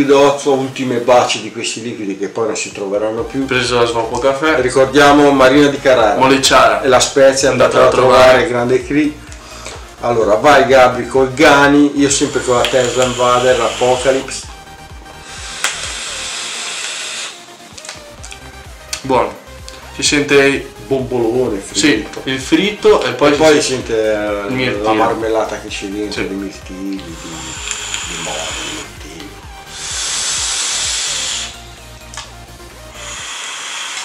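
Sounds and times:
faint background music: 0:00.0 - 0:34.0
e-cigarette airy hiss: 0:12.0 - 0:18.6, 0:26.9 - 0:34.0.

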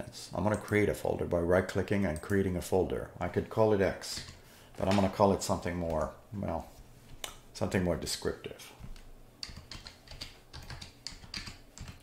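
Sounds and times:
computer keyboard key clicks: 0:09.4 - 0:12.0.

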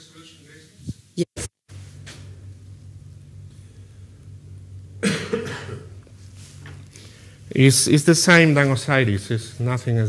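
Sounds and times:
low room hum: 0:00.0 - 0:10.0
person coughing: 0:05.0 - 0:06.0.

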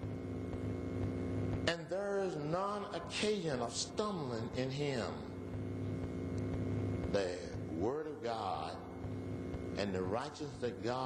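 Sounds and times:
electrical mains hum: 0:00.0 - 0:11.0
man speaking: 0:01.7 - 0:05.4, 0:07.1 - 0:08.9, 0:09.8 - 0:11.0.

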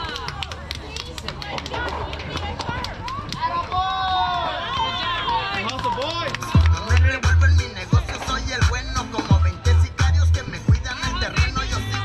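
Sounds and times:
voices shouting and cheering: 0:00.0 - 0:12.0
sharp claps: 0:05.2 - 0:07.4.

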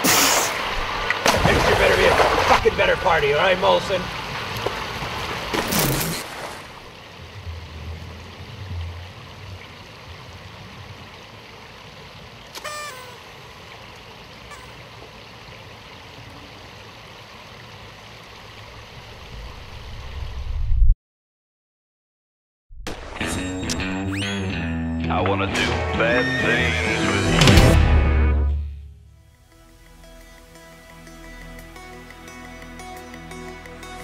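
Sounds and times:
steady outdoor hiss: 0:00.0 - 0:20.6, 0:29.1 - 0:34.0
low rumble: 0:07.2 - 0:09.6.

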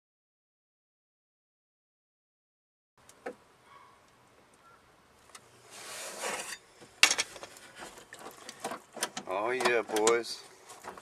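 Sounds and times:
scraping rub of bolt: 0:05.7 - 0:06.6.

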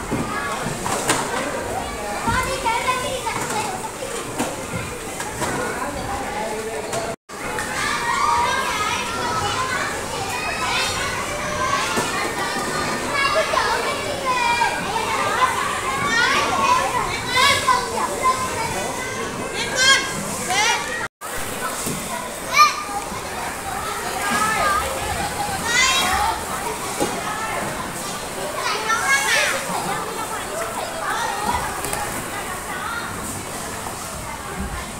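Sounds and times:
children chattering and calling out: 0:00.0 - 0:34.9.

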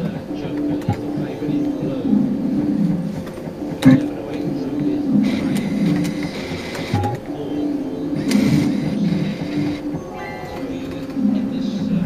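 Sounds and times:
fruit machine electronic music: 0:00.0 - 0:12.0.

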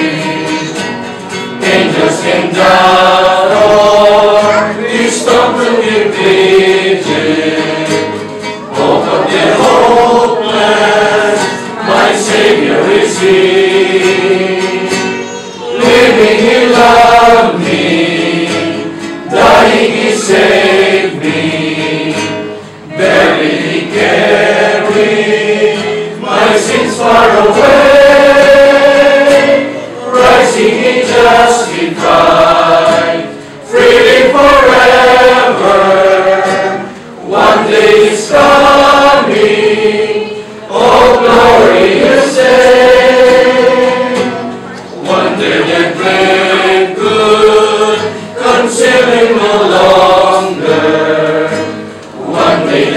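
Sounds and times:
acoustic guitar: 0:00.0 - 0:52.9
group singing a hymn: 0:00.0 - 0:52.9
man's voice leading singing: 0:01.6 - 0:08.2, 0:08.8 - 0:22.4.

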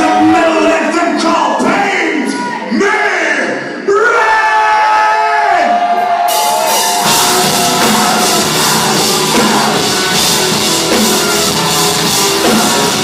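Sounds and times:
cymbals: 0:06.3 - 0:13.0
metal band playing: 0:06.3 - 0:13.0
held sliding melody line: 0:06.9 - 0:13.0.

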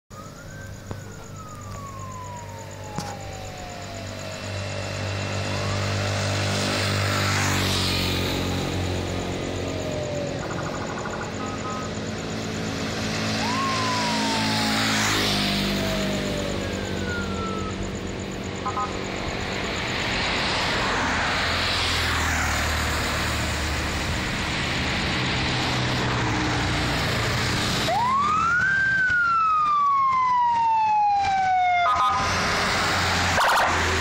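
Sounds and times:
police siren wailing: 0:00.1 - 0:34.0
vehicle engine and tyre noise: 0:00.1 - 0:34.0.

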